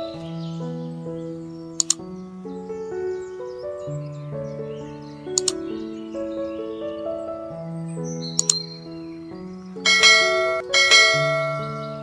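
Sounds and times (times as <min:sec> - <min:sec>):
soft background music: 0:00.0 - 0:12.0
notification bell ringing: 0:09.9 - 0:12.0.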